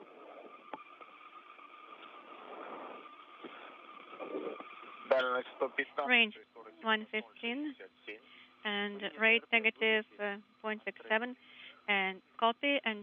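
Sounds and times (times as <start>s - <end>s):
faint steady tones: 0.0s - 13.0s
radio channel hiss: 0.0s - 13.0s
voice over radio: 4.2s - 11.4s.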